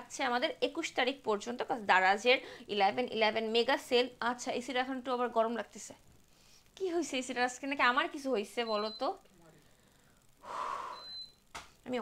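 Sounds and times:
woman speaking: 0.0s - 6.0s, 6.8s - 9.2s
woman inhaling: 9.7s - 11.2s.

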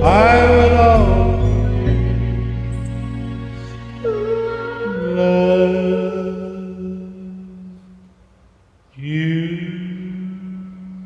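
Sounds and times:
karaoke backing track: 0.0s - 6.9s
person singing long note: 4.0s - 8.0s.

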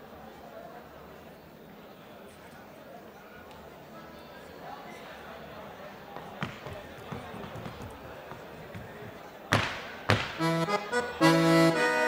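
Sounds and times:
crowd murmuring: 3.0s - 12.0s
boots knocking on stage floor: 6.2s - 10.4s
loud boot stamp: 6.2s - 10.5s.

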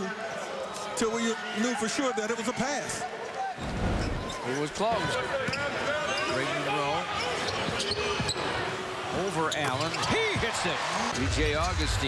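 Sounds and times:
shoe squeaks: 7.1s - 8.5s, 9.5s - 10.3s.

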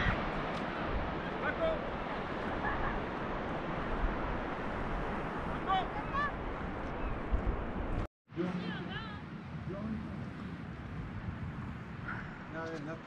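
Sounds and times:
distant surf: 0.0s - 13.0s
wind buffeting microphone: 0.0s - 13.0s.

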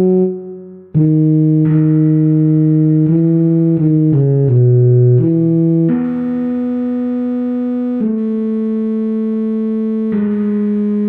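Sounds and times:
euphonium long note: 0.0s - 11.0s
musical accompaniment: 0.0s - 11.0s.

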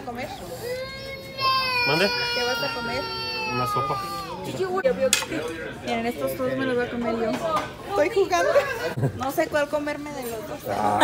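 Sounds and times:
voices at dinner table: 0.0s - 11.0s.

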